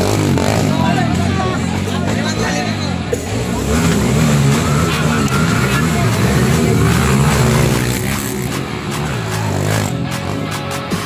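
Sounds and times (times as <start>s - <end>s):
motorcycle engine revving: 0.0s - 11.0s
music: 0.2s - 11.0s.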